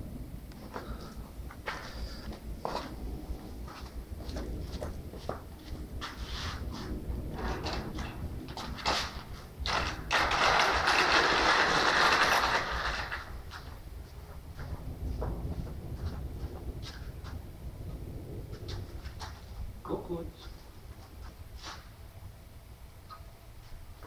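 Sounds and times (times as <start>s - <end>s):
panel rustling and scraping: 5.6s - 13.8s.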